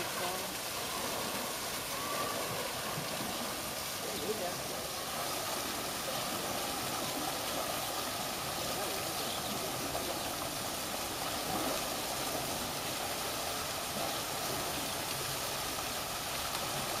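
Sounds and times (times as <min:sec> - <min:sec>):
waterfall rushing into pool: 0:00.0 - 0:17.0.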